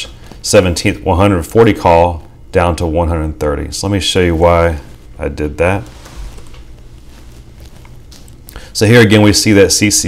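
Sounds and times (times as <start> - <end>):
faint background hiss: 0.0 - 10.0
low steady hum: 0.0 - 10.0.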